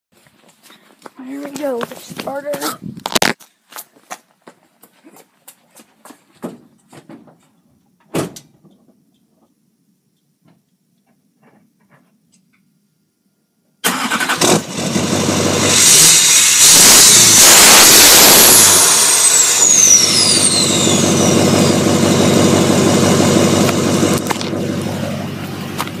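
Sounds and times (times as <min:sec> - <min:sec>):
diesel engine starting and idling: 0:13.8 - 0:26.0.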